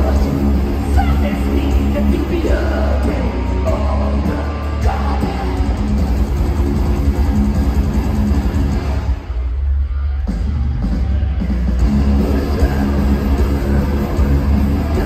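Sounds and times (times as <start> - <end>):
metal band playing live: 0.0 - 15.0.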